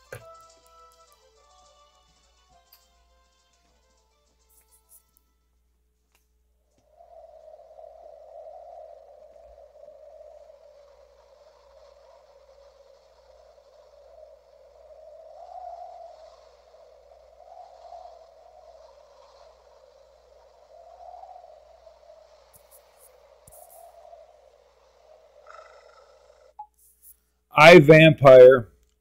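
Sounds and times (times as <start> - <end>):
faint wavering drone tone: 7.0 - 26.7.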